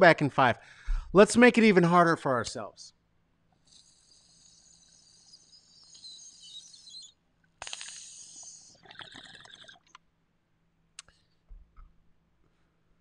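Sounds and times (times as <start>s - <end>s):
smoke drawn through glass pipe: 3.6s - 10.0s
lighter flame hissing: 3.7s - 8.8s.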